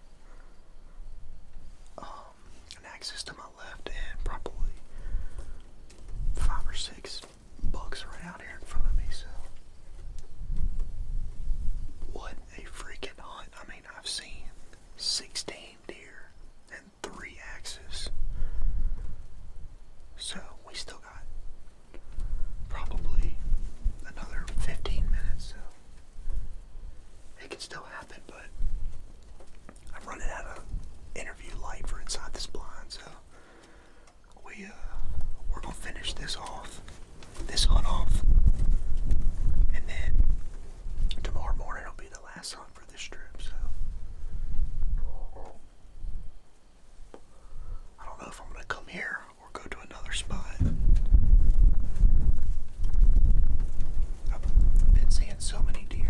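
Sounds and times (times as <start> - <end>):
man whispering: 1.9 - 5.4, 6.3 - 9.6, 12.0 - 18.2, 20.2 - 21.4, 22.7 - 25.9, 27.3 - 28.6, 29.8 - 33.4, 34.3 - 38.3, 39.7 - 40.3, 41.1 - 43.9, 44.8 - 45.7, 47.8 - 50.8, 54.2 - 56.0
low rumbles: 43.2 - 46.5, 49.5 - 56.0.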